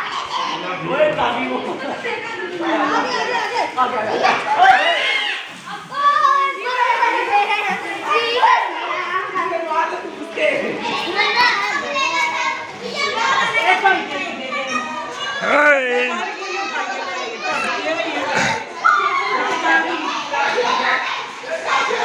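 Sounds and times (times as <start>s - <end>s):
children shouting while playing: 2.6s - 9.4s, 10.8s - 22.0s.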